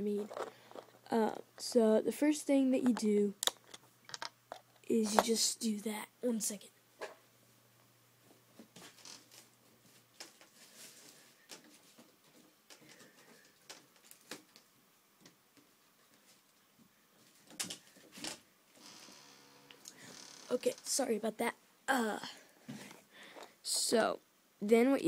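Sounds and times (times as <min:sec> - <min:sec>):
faint clicks and rustles: 0:00.0 - 0:01.7, 0:07.8 - 0:21.1.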